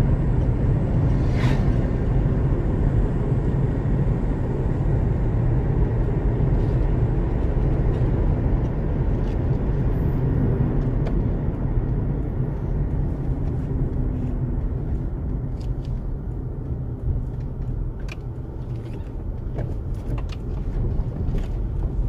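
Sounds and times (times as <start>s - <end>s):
car driving on asphalt: 0.0s - 22.0s.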